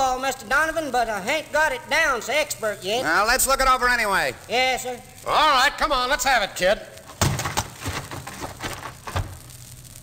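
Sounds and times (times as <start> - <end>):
low recording hum: 0.0 - 10.0.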